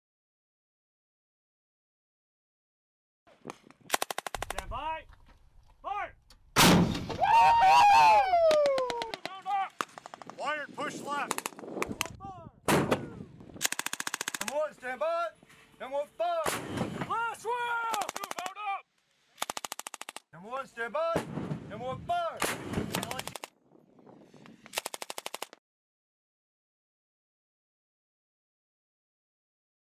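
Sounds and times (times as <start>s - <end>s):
person shouting: 7.2s - 9.2s
rapid automatic gunfire: 13.6s - 14.6s, 17.9s - 18.5s, 19.4s - 20.2s, 22.9s - 23.5s, 24.8s - 25.6s.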